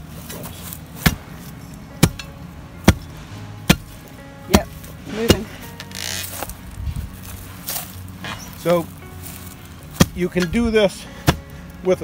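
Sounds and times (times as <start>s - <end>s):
steel bar striking tree root: 1.0s - 1.2s, 2.0s - 5.6s, 9.9s - 11.5s.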